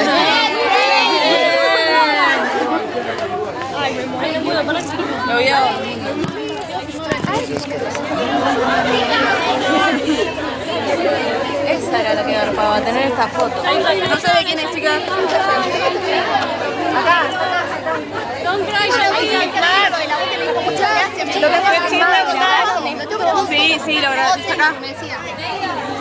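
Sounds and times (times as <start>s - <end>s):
people chattering: 0.0s - 26.0s.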